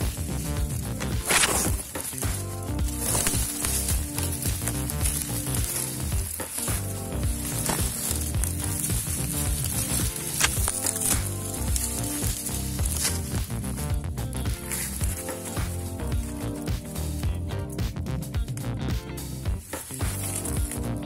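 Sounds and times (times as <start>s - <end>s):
dry grass rustling and snapping: 0.0s - 21.0s
instrumental background music: 0.0s - 21.0s.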